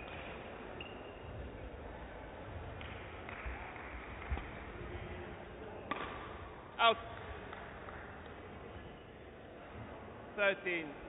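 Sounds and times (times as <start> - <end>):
racket striking shuttlecock: 2.8 - 4.6, 5.9 - 6.5.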